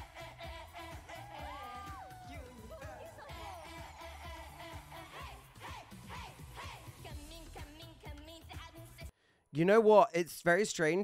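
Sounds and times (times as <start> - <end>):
group vocals chanting: 0.0 - 7.1
dance track with beat: 0.0 - 9.1.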